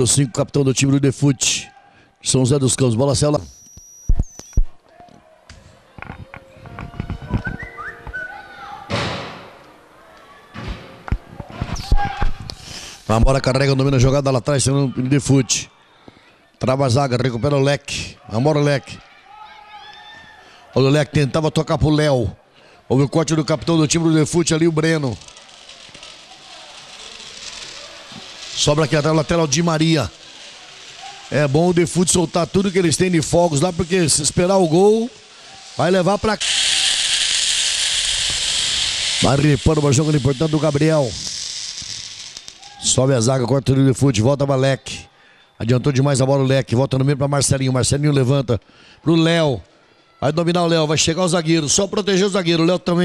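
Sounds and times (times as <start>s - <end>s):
children calling: 7.7s - 9.0s, 24.5s - 37.0s
steady hiss: 11.9s - 13.4s, 23.8s - 43.3s.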